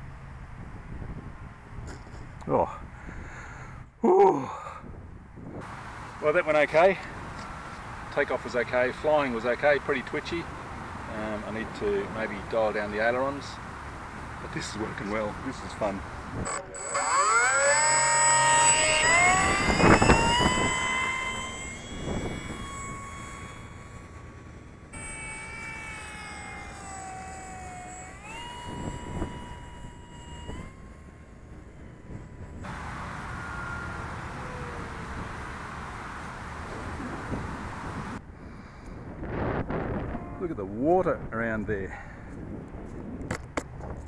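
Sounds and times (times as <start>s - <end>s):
model plane electric motor whining: 5.6s - 38.9s.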